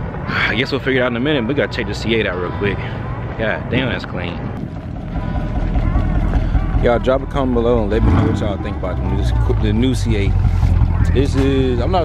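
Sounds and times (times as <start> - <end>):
car engine idling: 4.6 - 12.0.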